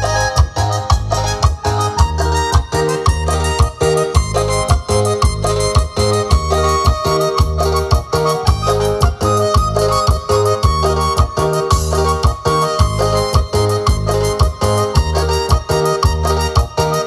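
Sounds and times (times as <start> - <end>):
electronic keyboard dance music: 0.0 - 17.0.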